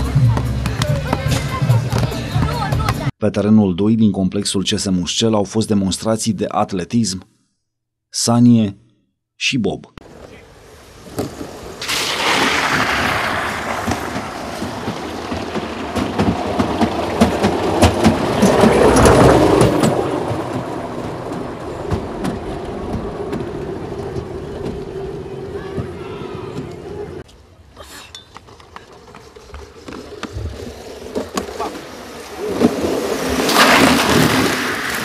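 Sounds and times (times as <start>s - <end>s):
sled rolling on metal track: 11.0s - 27.2s, 28.1s - 35.0s.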